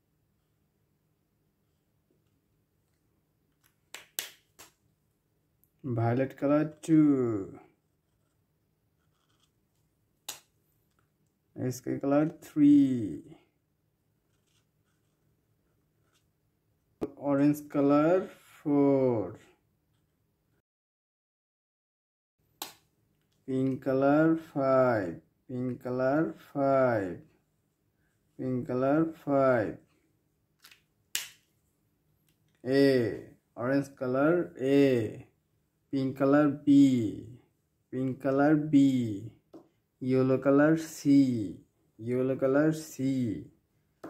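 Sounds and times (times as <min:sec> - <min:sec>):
person saying a letter: 0:05.8 - 0:07.8, 0:11.6 - 0:13.5, 0:17.0 - 0:19.5, 0:23.5 - 0:27.4, 0:28.4 - 0:29.9, 0:32.6 - 0:35.3, 0:35.9 - 0:39.4, 0:40.0 - 0:43.6
marker scratching on paper: 0:07.8 - 0:09.6, 0:14.2 - 0:16.3.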